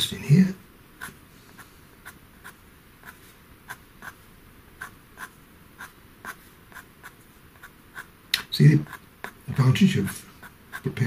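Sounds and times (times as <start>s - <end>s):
pencil scratching on paper: 1.0s - 4.2s, 4.8s - 11.0s.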